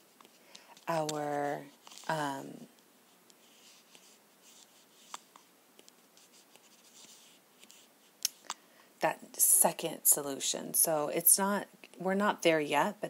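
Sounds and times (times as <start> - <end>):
stylus scratching on glass screen: 0.8 - 2.4, 3.4 - 8.1.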